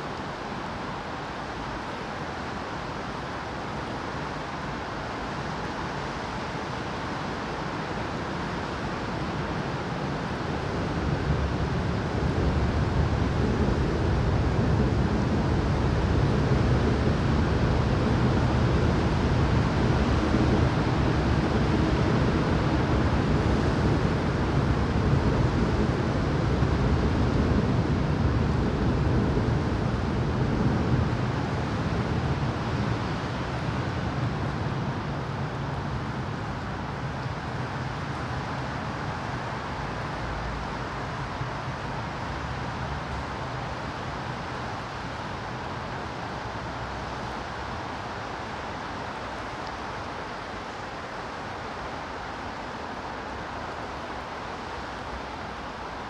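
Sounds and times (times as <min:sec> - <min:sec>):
steady rain falling: 0:00.0 - 0:56.0.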